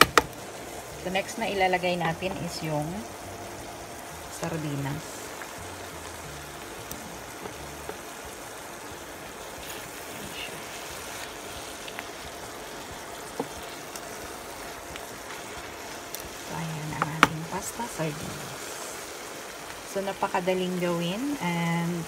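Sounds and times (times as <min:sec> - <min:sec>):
sauce simmering in a pan: 0:00.0 - 0:22.0.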